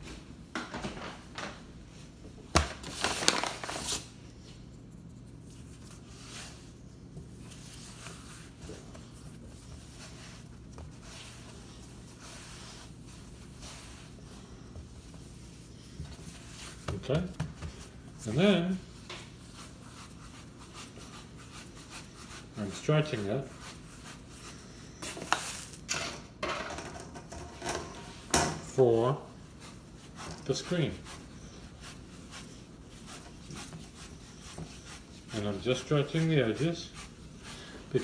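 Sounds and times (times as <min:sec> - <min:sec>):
soft handling noises: 0:00.0 - 0:25.9
steady low hum: 0:00.0 - 0:38.0
dough rustling: 0:01.0 - 0:25.9, 0:27.5 - 0:38.0.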